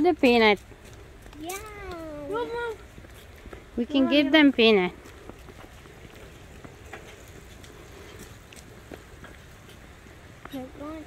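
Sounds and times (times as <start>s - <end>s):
bicycle rolling on pavement: 0.0s - 11.0s
low wind: 0.0s - 11.0s.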